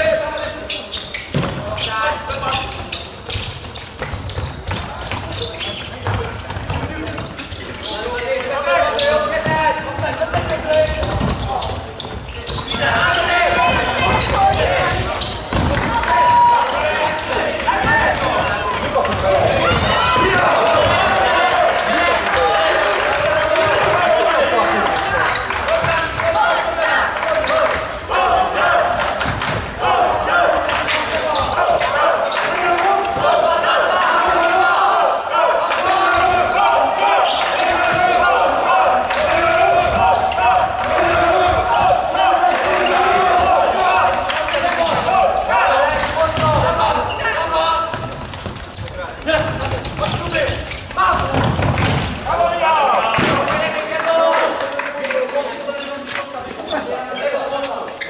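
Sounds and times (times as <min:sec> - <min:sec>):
people shouting and calling: 0:04.8 - 0:54.6.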